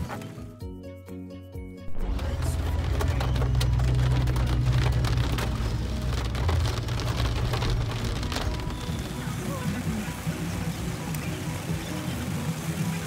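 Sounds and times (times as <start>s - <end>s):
heavy rain on car roof: 1.9s - 13.0s
low car rumble: 1.9s - 13.0s.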